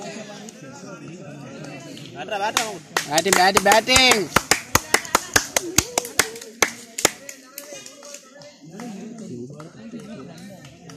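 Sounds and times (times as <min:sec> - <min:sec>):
voices: 0:00.0 - 0:10.9
rapid hand claps: 0:02.5 - 0:10.9.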